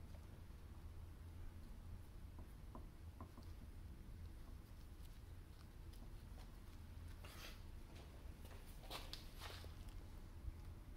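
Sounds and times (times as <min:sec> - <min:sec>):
low steady room hum: 0:00.0 - 0:10.9
faint soft scuffs: 0:07.2 - 0:09.8.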